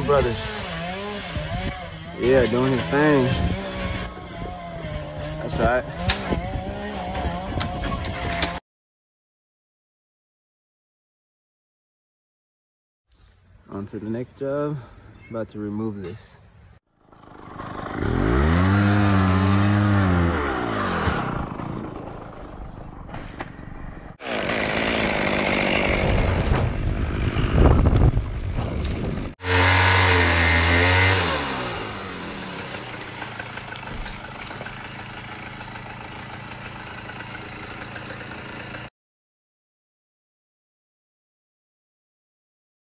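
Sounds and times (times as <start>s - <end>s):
chainsaw revving and cutting wood: 0.0s - 8.6s, 17.1s - 22.7s, 24.2s - 27.9s, 28.8s - 38.9s.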